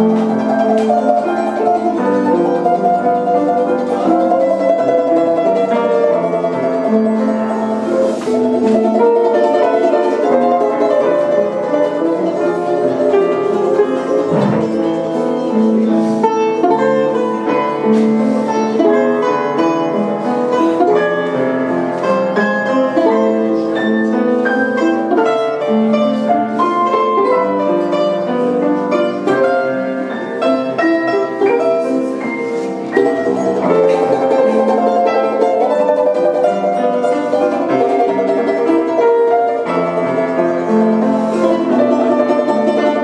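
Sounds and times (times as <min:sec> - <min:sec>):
balalaika plucked notes: 0:00.0 - 0:43.0
piano accompaniment: 0:00.0 - 0:43.0.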